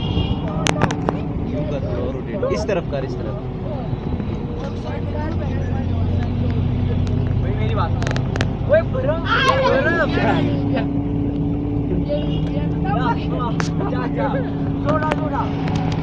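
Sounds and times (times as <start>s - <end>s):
car engine running: 0.0s - 16.0s.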